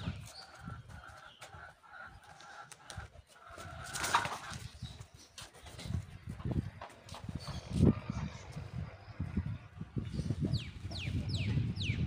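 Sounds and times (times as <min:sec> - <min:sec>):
low rumbling on microphone: 0:05.8 - 0:12.0.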